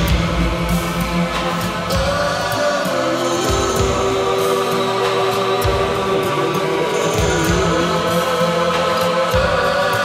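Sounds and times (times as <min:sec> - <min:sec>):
low bass notes: 0:00.0 - 0:10.0
sustained layered tones: 0:00.0 - 0:10.0.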